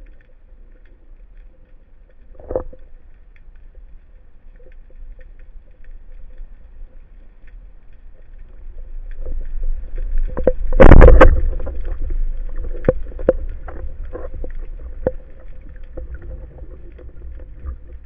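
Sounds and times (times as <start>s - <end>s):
speargun firing underwater: 10.7s - 11.7s.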